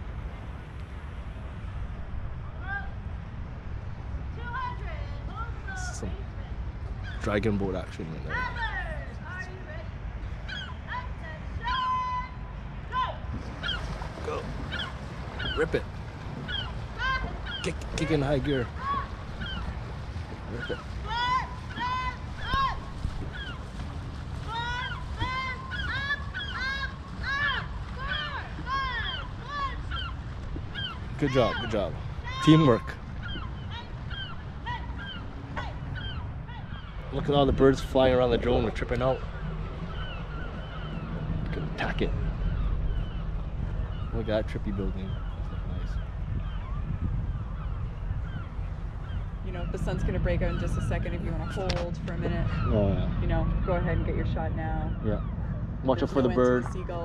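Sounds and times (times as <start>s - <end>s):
wind rumbling on microphone: 0.0s - 57.0s
birds calling: 3.9s - 57.0s
short bird calls: 13.5s - 19.8s
distant person shouting: 20.6s - 22.9s, 24.5s - 30.1s.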